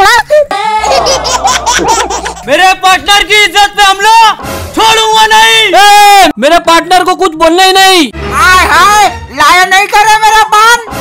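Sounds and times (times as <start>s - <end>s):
high-pitched giggling: 0.2s - 2.5s.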